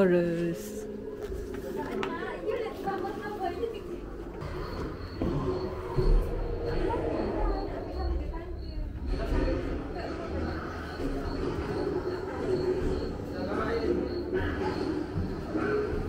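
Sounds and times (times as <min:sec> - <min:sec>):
indistinct low voices: 0:00.8 - 0:16.0.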